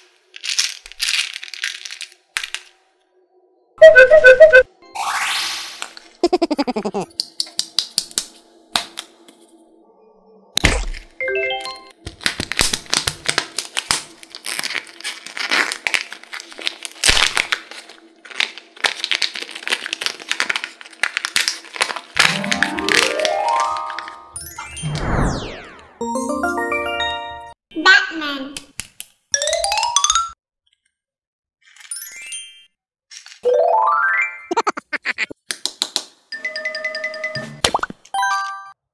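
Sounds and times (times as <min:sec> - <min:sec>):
rising run of chime notes: 0:22.2 - 0:27.6.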